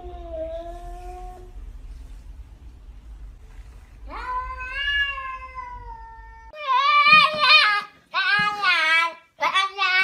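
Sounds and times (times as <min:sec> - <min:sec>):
cat meowing: 0:04.1 - 0:07.0.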